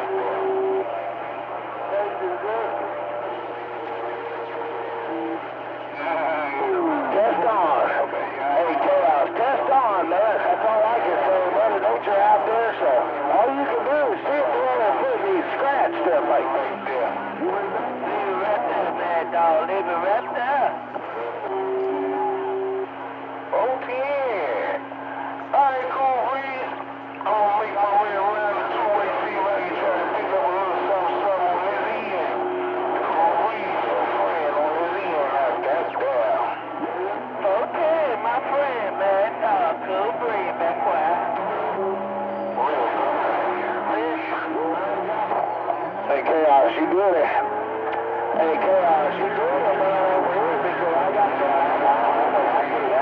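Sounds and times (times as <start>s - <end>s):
garbled voices over radio: 0.0s - 1.2s, 1.8s - 53.0s
constant low hum: 0.0s - 53.0s
steady radio tones: 0.0s - 53.0s.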